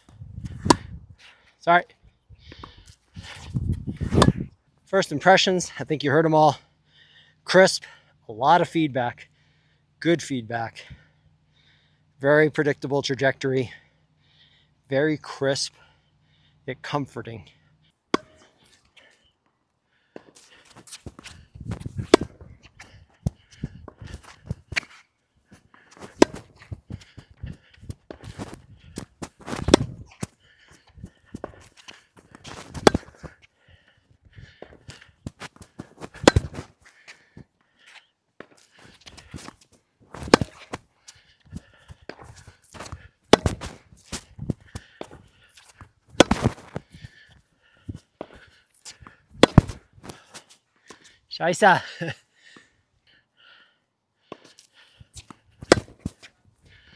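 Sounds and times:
racquets striking tennis ball: 0.5 - 1.0, 3.4 - 4.5, 18.1 - 18.8, 20.1 - 25.0, 25.6 - 33.5, 34.5 - 37.5, 38.4 - 47.2, 47.9 - 50.3, 55.2 - 56.3
ball bouncing on hard court: 0.6 - 0.9, 4.1 - 4.4, 21.8 - 22.5, 26.1 - 26.6, 29.5 - 30.0, 32.7 - 33.3, 36.1 - 36.6, 40.2 - 40.8, 43.3 - 43.8, 46.2 - 46.7, 49.4 - 49.8, 55.6 - 56.0
shoe steps on hard court: 20.2 - 22.6, 26.0 - 27.3, 28.1 - 30.3, 31.3 - 33.4, 34.6 - 36.7, 38.4 - 40.8, 41.6 - 46.9, 49.4 - 50.2, 55.2 - 56.3.

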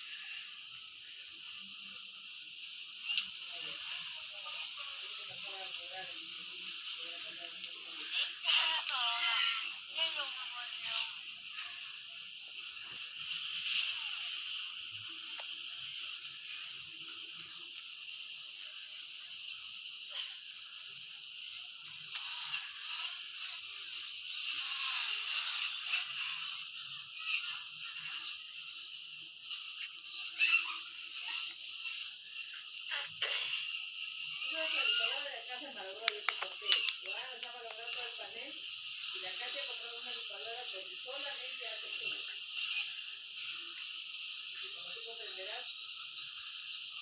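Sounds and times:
harsh high-pitched hiss: 0.0 - 47.0
muffled voice-like sound: 0.0 - 47.0.

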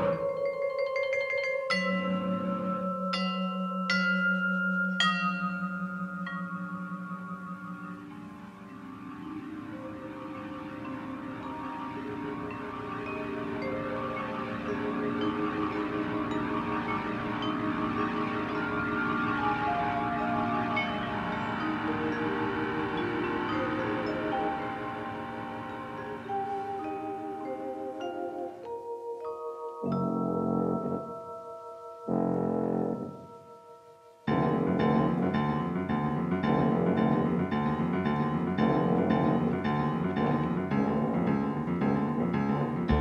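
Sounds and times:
vibraphone chords ringing: 0.0 - 43.0
jazz big band slow chords: 29.9 - 31.4, 32.0 - 33.4, 34.3 - 43.0.

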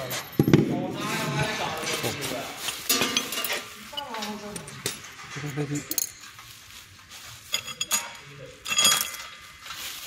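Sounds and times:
metal parts clinking: 2.6 - 6.6, 7.2 - 10.0
ringing metal clank: 7.6 - 9.4.

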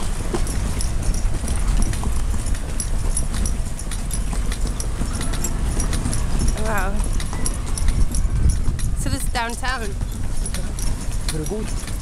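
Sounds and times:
horse hooves clip-clopping: 0.0 - 12.0.

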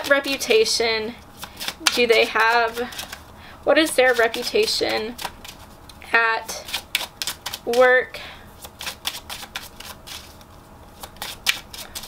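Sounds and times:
cards being shuffled by hand: 1.4 - 5.9, 6.6 - 7.9, 8.6 - 12.0.

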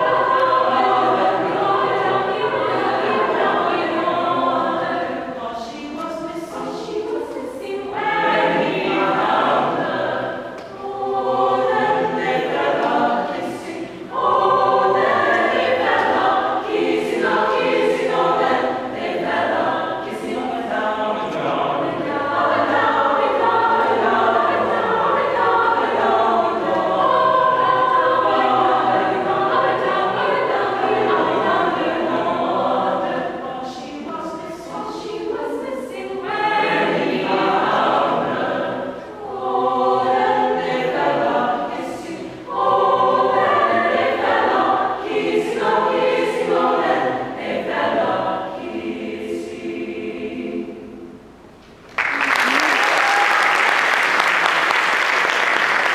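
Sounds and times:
mixed choir singing: 0.0 - 51.4, 52.4 - 55.9
audience applause: 51.9 - 55.9.

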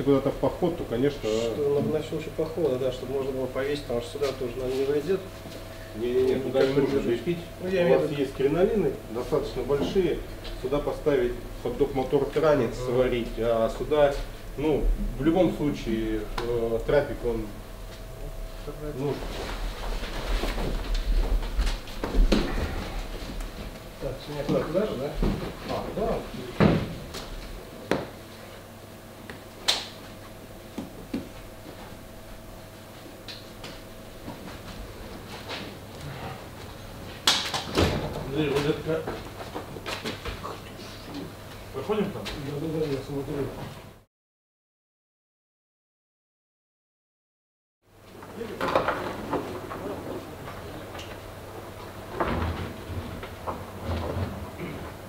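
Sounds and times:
faint steady hum: 0.0 - 43.6.

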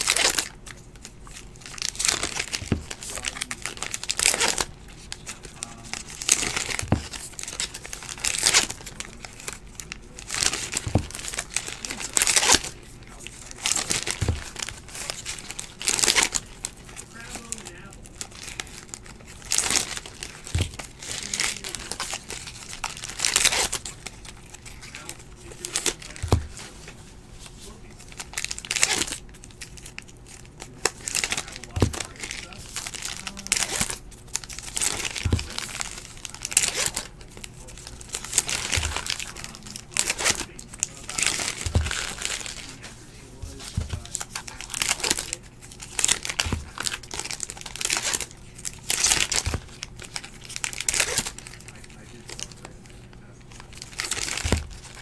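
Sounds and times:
card pack wrappers tearing: 0.0 - 27.0, 27.8 - 55.0.

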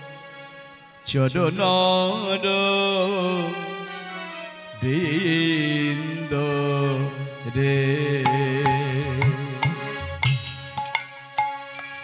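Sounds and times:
harmonium: 0.0 - 12.0
man singing: 1.0 - 3.9, 4.8 - 10.0
hand drum strokes: 8.3 - 12.0.

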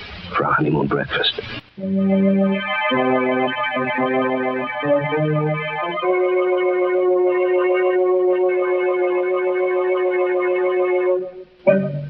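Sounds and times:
sustained organ chord: 1.8 - 12.0.

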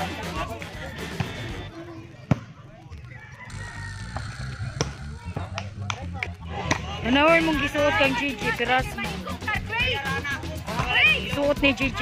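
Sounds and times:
players' voices: 0.0 - 12.0.

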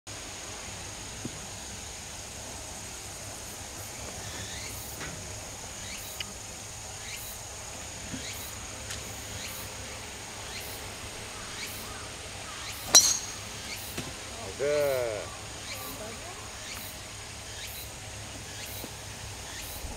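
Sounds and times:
golf club striking ball: 12.8 - 14.1.

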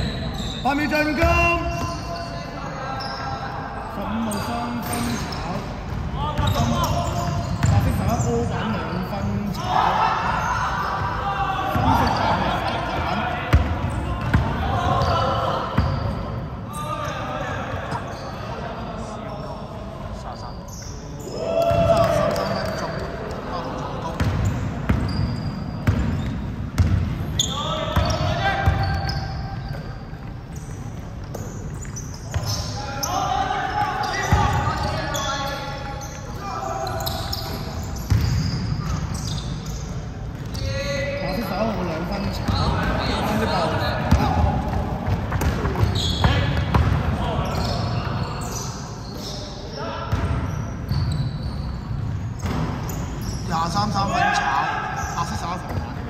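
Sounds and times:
players calling out: 0.0 - 56.0.

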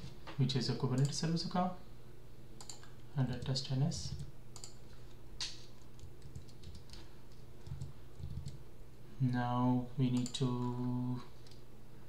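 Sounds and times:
steady low hum: 0.0 - 12.0
keyboard typing: 5.4 - 8.6.

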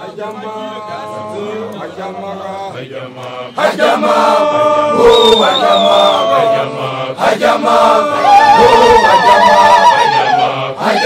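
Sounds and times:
male voices chanting together: 0.0 - 11.0.

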